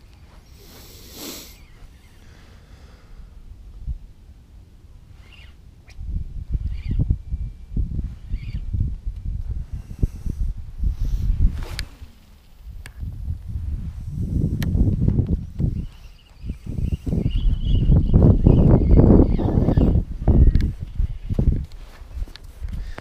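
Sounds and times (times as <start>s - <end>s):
gusty wind buffeting microphone: 1.6s - 23.0s
faint short calls: 5.2s - 6.0s.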